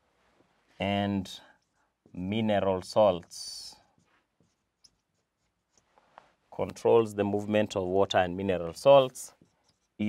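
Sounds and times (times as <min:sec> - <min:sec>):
marker pen writing on whiteboard: 0:01.3 - 0:10.0.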